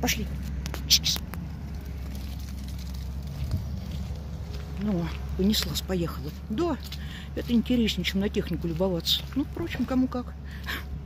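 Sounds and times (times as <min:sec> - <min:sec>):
diesel engine rumbling: 0:00.0 - 0:11.0.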